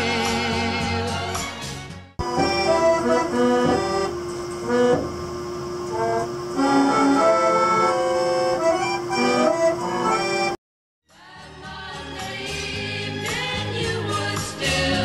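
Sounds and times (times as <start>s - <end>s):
accordion melody: 2.2s - 10.6s
orchestrion playing a tune: 2.2s - 10.6s.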